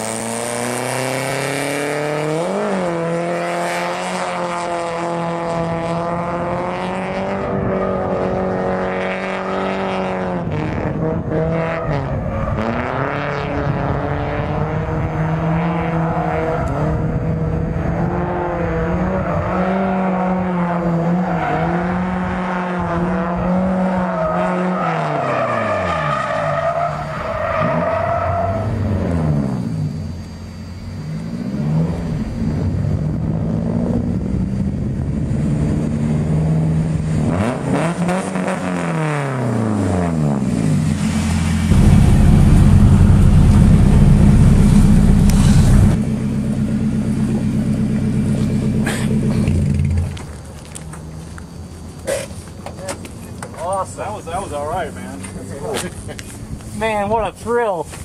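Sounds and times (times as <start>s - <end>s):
car engine revving: 0.0s - 50.3s.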